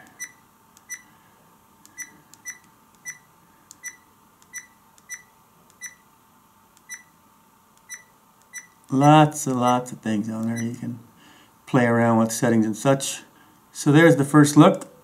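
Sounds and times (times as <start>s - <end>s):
camera key-tone beeps: 0.2s - 1.1s, 2.0s - 6.0s, 6.9s - 7.1s, 7.8s - 8.8s, 10.5s - 10.8s.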